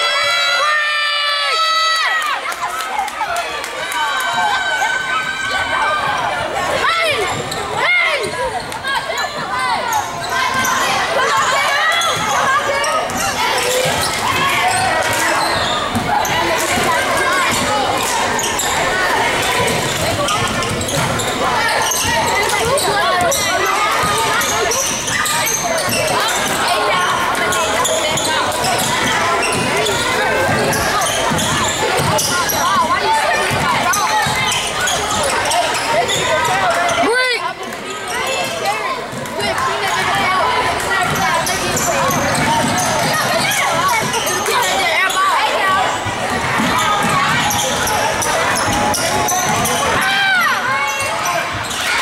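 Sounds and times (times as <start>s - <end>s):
crowd talking and calling out: 0.0s - 52.0s.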